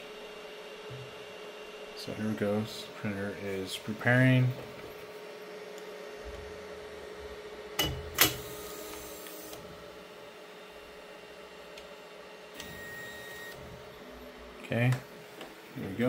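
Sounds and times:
printer motors humming: 0.0 - 16.0
faint high whine: 12.5 - 15.1.

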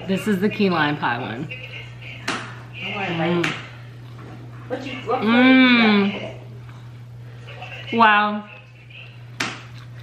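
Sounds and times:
muffled hum through full mouth: 0.0 - 10.0
woman chewing: 9.6 - 10.0.

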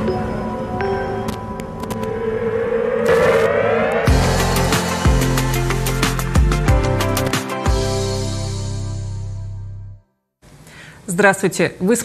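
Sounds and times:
siren-like synthesized tone rising: 1.7 - 6.4.

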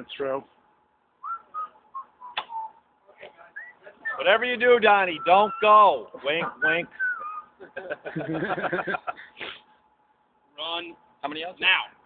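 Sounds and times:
distant calls: 1.2 - 7.9.

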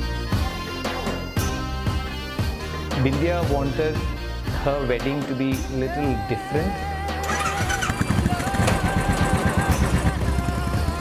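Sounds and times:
background music with held notes: 0.0 - 11.0
motorcycle engine running: 7.2 - 11.0.

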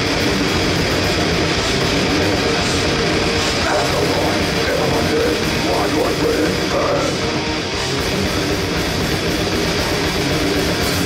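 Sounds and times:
live grindcore band playing: 0.0 - 11.0.

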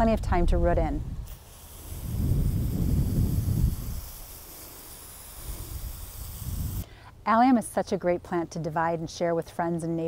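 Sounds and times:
wind rumbling on microphone: 0.0 - 4.4, 5.3 - 6.8
hose spray nozzle hissing: 1.2 - 6.9.

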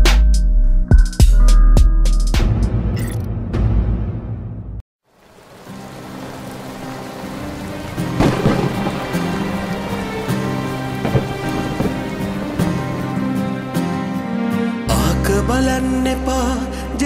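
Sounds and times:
rain: 5.0 - 14.8
thunder rolling: 5.7 - 13.9
soft instrumental music: 5.7 - 17.0.

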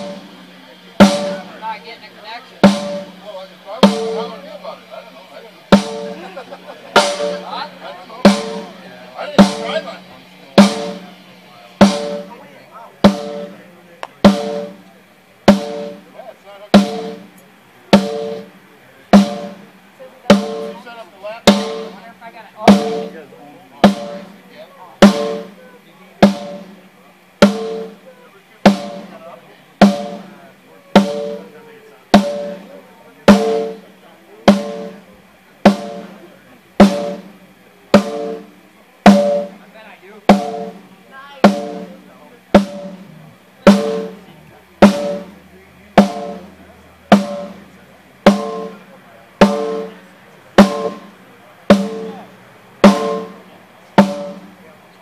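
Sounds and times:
drum struck with stick: 0.0 - 54.8.

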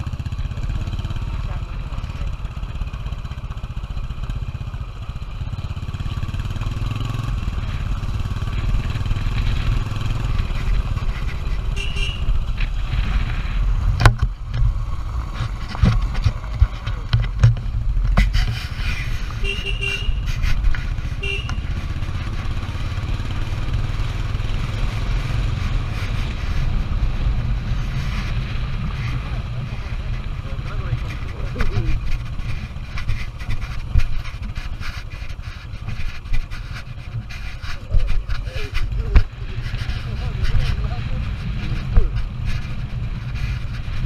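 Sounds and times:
motorcycle engine running: 0.0 - 44.0.

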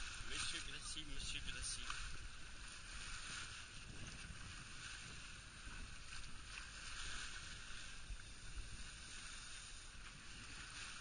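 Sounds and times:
rush of wind and water: 0.0 - 11.0.

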